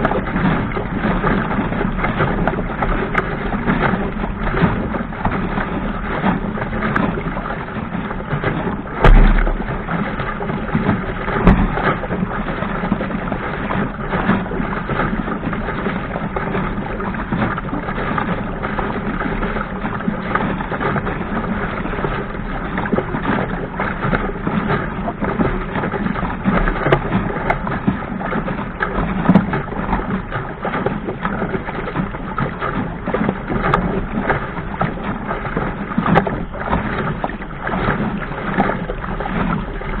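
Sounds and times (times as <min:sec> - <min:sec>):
water rushing along boat hull: 0:00.0 - 0:40.0.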